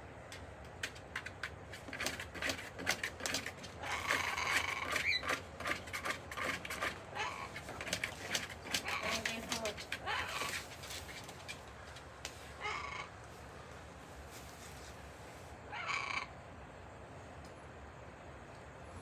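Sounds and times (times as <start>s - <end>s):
parrot squawking: 3.8s - 5.4s, 7.0s - 7.6s, 8.7s - 10.6s, 12.6s - 13.1s, 15.7s - 16.3s.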